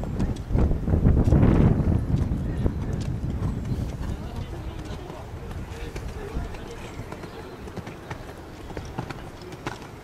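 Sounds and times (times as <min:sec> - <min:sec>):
horse hooves thudding on sand: 0:00.0 - 0:10.0.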